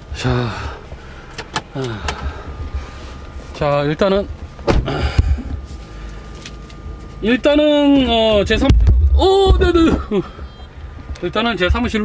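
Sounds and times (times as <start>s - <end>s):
car engine and air conditioning hum: 0.0s - 12.0s.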